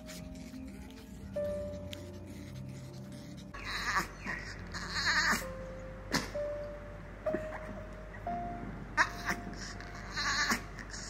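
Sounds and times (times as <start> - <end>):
dog whining: 0.0 - 6.5, 9.0 - 11.0
background music with held note: 0.0 - 11.0.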